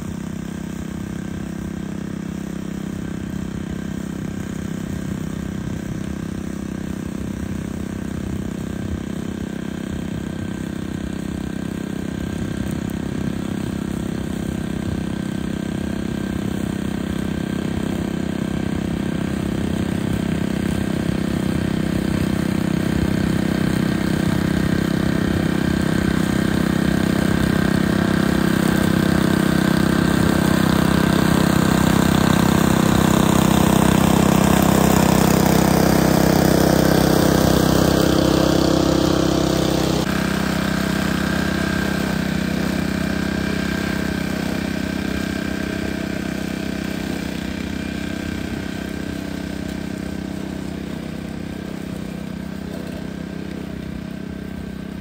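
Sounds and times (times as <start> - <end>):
lawn mower engine running: 0.0 - 55.0.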